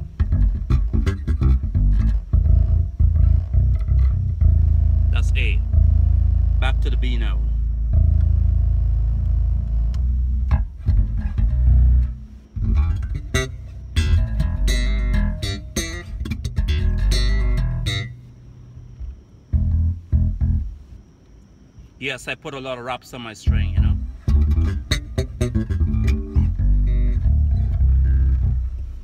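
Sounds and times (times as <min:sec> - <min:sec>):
electric bass notes: 0:00.0 - 0:20.9, 0:23.5 - 0:29.0.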